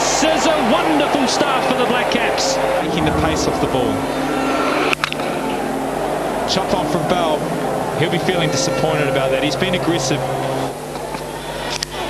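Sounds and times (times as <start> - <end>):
crowd murmur: 2.8 - 4.8.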